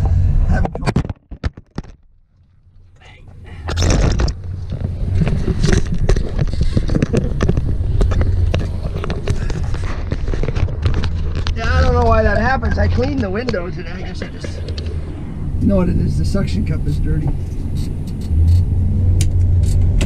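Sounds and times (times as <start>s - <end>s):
low engine hum: 0.0s - 0.8s, 2.6s - 20.0s
camera mount knocks and rubbing: 0.6s - 2.0s, 3.7s - 11.6s.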